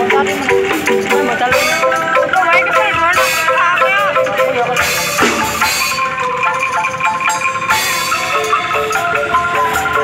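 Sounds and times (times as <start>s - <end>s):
wooden xylophone melody: 0.0s - 10.0s
cymbal hit: 5.0s - 6.1s.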